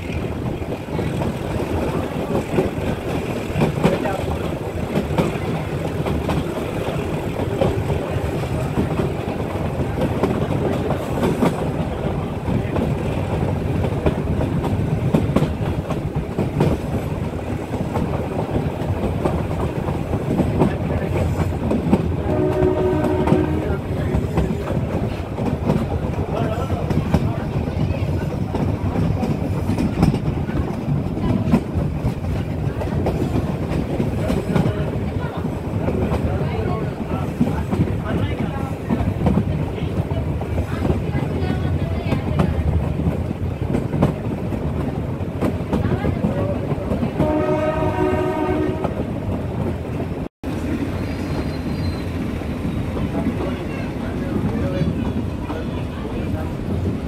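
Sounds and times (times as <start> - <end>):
diesel locomotive working hard: 0.0 - 57.0
rail joint clicks: 0.0 - 57.0
wheel and rail clatter: 0.0 - 57.0
train horn: 22.2 - 23.9, 47.2 - 49.1.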